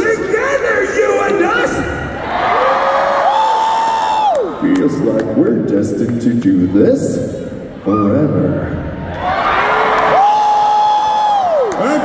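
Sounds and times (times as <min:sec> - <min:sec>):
crowd cheering: 0:02.0 - 0:05.0, 0:09.0 - 0:12.0.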